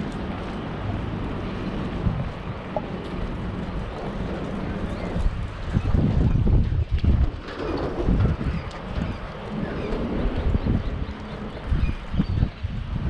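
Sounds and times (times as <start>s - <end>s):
footsteps on paved path: 0.0s - 12.8s
wind buffeting microphone: 0.0s - 13.0s.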